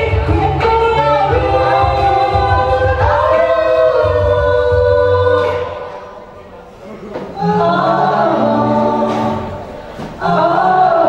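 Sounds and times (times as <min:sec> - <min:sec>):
a cappella group singing: 0:00.0 - 0:06.3, 0:07.1 - 0:11.0.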